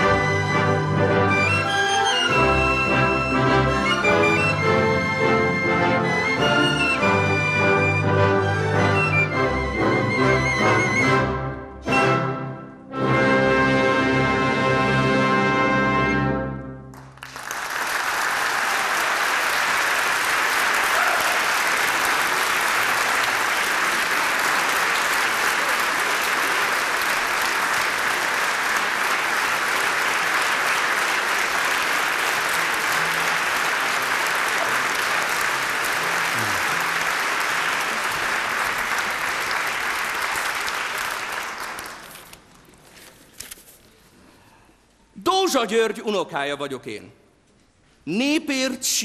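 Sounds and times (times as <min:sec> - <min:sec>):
audience applauding: 0:16.9 - 0:42.6.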